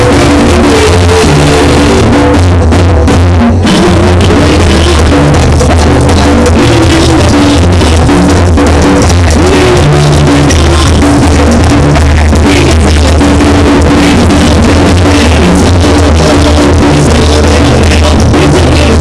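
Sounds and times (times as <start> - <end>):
distorted live band music: 0.0 - 19.0
drum kit beat: 0.0 - 19.0.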